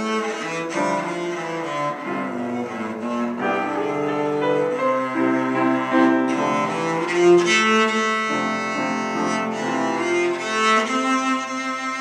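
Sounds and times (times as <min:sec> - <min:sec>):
bowed cello melody: 0:00.0 - 0:12.0.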